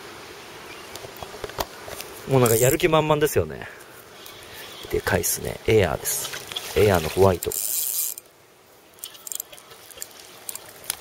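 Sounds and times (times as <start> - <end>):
reel clicks: 2.4 - 2.8, 6.2 - 8.3, 9.0 - 11.0
spinning reel whirring: 6.5 - 8.2.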